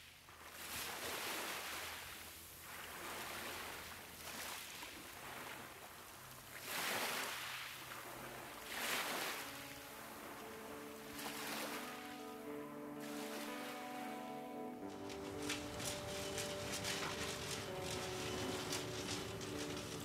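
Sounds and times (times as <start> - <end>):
small waves washing on shore: 0.0 - 20.0
soft music of long notes: 8.0 - 20.0.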